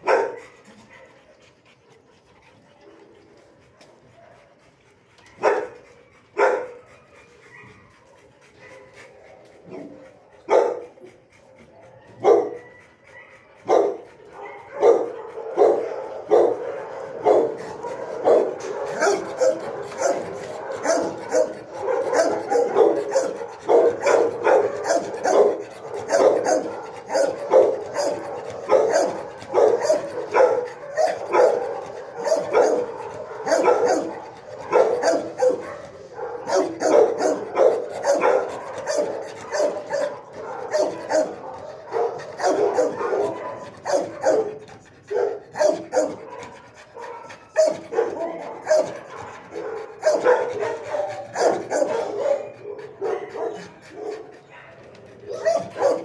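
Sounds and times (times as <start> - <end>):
dogs barking: 0.0 - 56.0.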